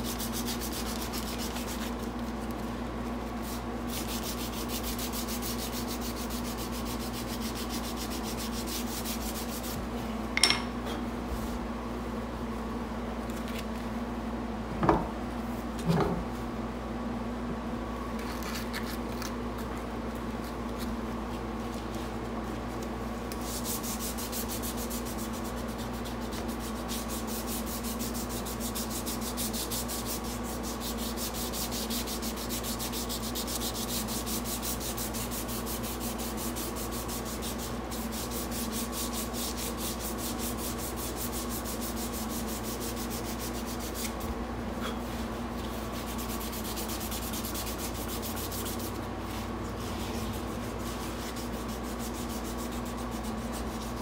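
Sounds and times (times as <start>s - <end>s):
sandpaper sanding by hand: 0.0s - 2.7s, 3.3s - 9.8s, 23.3s - 44.3s, 45.5s - 54.0s
steady hum: 0.0s - 54.0s.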